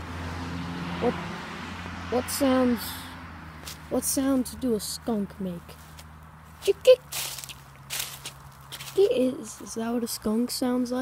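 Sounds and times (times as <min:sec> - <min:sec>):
rustling scuffs of steps: 0:03.6 - 0:04.0, 0:05.6 - 0:09.7.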